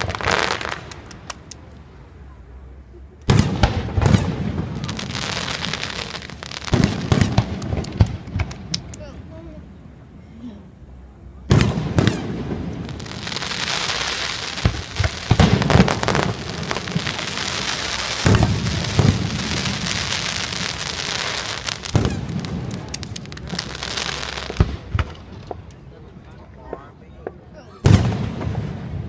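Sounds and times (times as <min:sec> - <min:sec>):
fireworks booms: 0:00.0 - 0:01.5, 0:03.3 - 0:09.0, 0:11.4 - 0:29.0
fireworks crackling: 0:00.0 - 0:09.6, 0:11.4 - 0:29.0.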